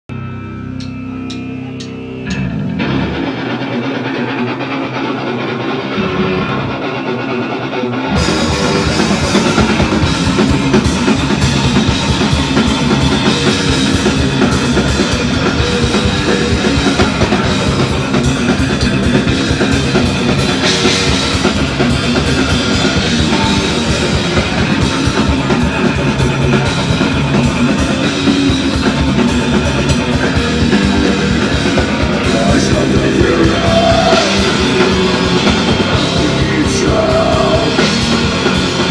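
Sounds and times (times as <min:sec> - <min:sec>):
bass guitar: 0:00.0 - 0:38.9
electric guitar: 0:00.1 - 0:38.9
drum kit: 0:00.8 - 0:38.9.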